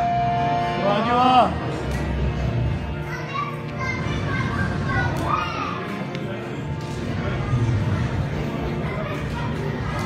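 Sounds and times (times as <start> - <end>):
harmonium drone: 0.0 - 3.7.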